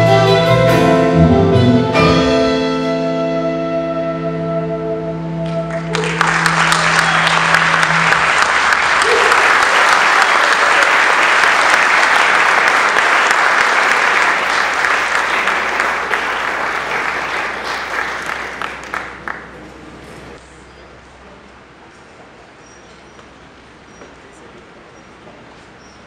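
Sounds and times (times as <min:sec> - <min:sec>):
audience applauding: 0:05.5 - 0:20.0.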